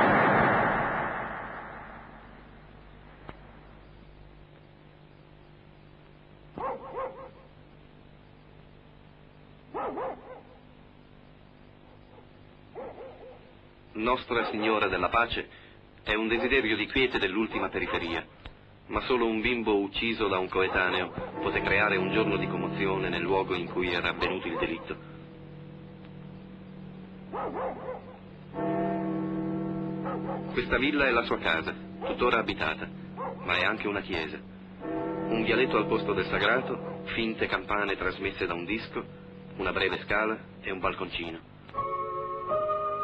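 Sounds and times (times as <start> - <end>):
faint hum: 0.0 - 43.0
dog barking: 6.6 - 7.5, 9.7 - 10.6, 11.9 - 13.5, 14.4 - 14.8, 17.7 - 18.2, 20.6 - 21.6, 24.2 - 25.1, 27.3 - 28.2, 30.0 - 30.6, 32.0 - 32.4, 33.1 - 33.6, 36.7 - 37.1
dog yapping: 6.6 - 7.5, 9.8 - 10.6, 12.8 - 13.4, 27.3 - 28.2, 33.2 - 33.5.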